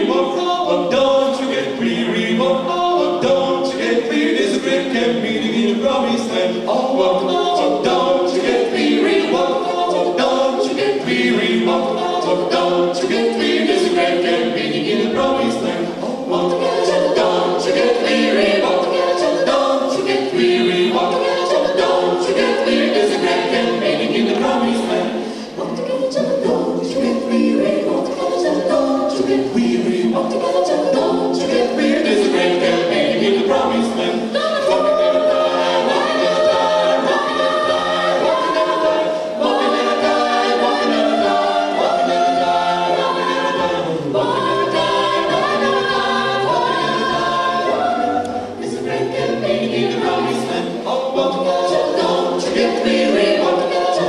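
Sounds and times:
a cappella gospel group singing: 0.0s - 54.0s.

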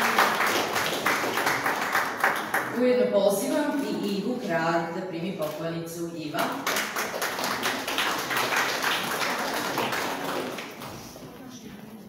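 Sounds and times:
audience applauding: 0.0s - 2.8s, 6.6s - 11.2s.

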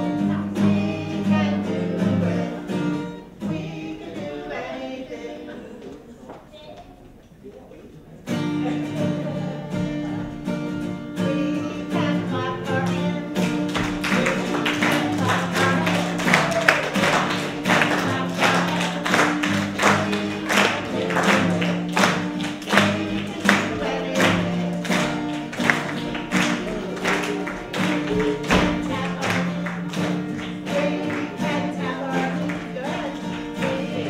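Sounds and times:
acoustic guitar strumming: 0.0s - 5.6s, 8.3s - 34.0s
voices singing: 0.0s - 6.6s, 8.4s - 34.0s
hand clapping: 13.3s - 34.0s.

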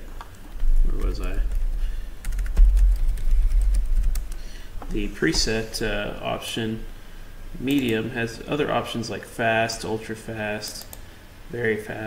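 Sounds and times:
keyboard typing: 0.1s - 4.5s
low rumble: 0.6s - 4.4s.

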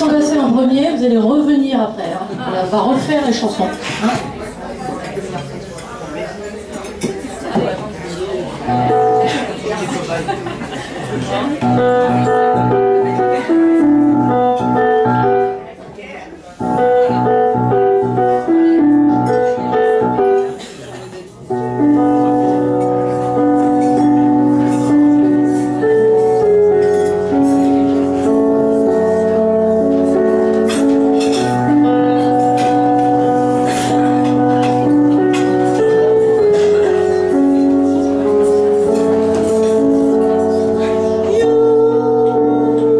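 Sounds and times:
electronic keyboard piano phrase: 8.6s - 9.8s, 11.2s - 15.8s, 16.5s - 20.6s, 21.4s - 42.9s.

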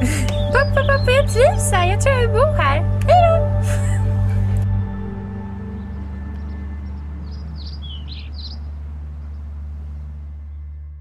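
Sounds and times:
steady low hum: 0.0s - 11.0s
high bird chirps: 0.3s - 1.6s, 5.6s - 10.6s.

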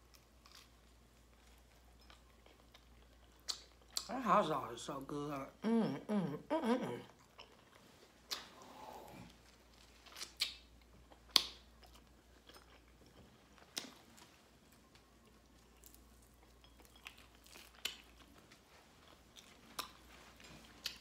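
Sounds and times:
person chewing: 0.0s - 4.1s, 6.9s - 21.0s.

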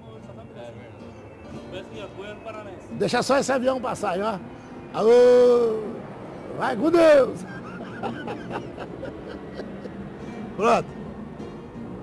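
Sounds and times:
airplane drone overhead: 0.0s - 12.0s.

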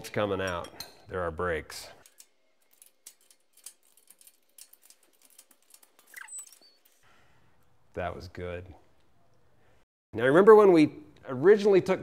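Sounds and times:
brief squeak: 6.1s - 7.0s.

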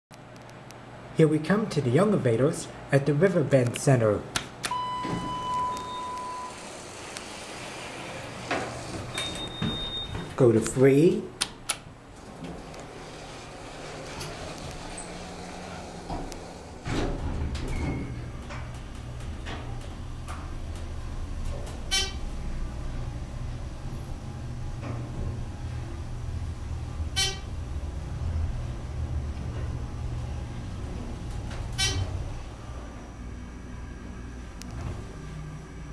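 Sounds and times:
high steady beep: 4.7s - 6.6s
electronic elevator arrival tone: 4.7s - 10.4s
elevator doors sliding open: 4.7s - 35.9s.

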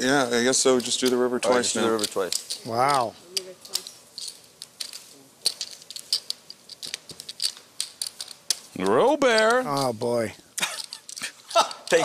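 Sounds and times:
poker chips clicking: 0.4s - 12.0s.

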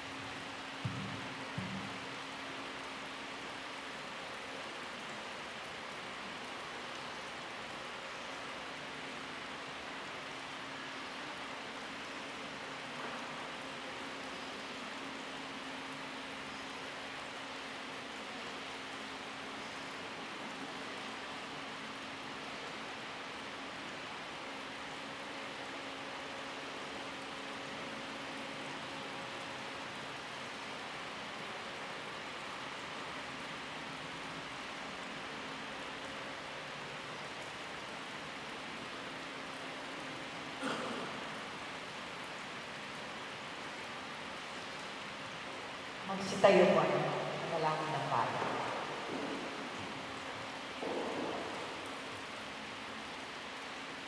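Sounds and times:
faint low hum: 0.0s - 53.8s
steady hiss: 0.0s - 54.0s.

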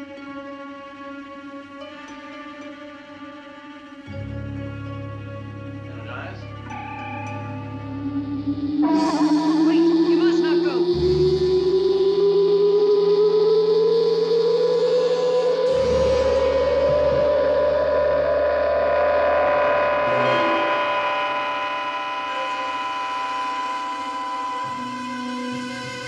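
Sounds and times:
high shimmering tones: 4.0s - 26.0s
deep rumbling swells: 5.7s - 24.6s
sustained tone rising in pitch: 5.8s - 26.0s
steady high hum: 6.0s - 25.6s.

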